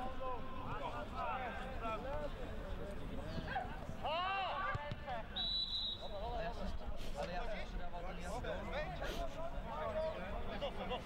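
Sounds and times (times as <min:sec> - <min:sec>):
referee's whistle: 0:05.3 - 0:06.1.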